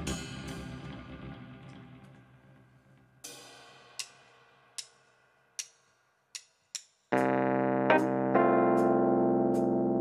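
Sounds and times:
hi-hat ticks: 3.9 - 7.2.

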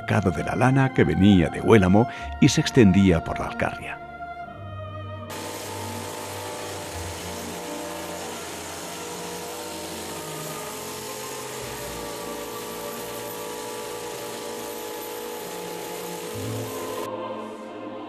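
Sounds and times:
electric shears buzzing: 5.3 - 17.8.

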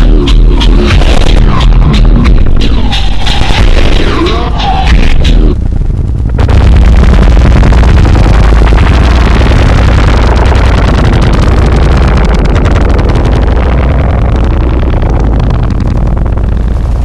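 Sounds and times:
harsh distorted noise music: 0.0 - 17.0.

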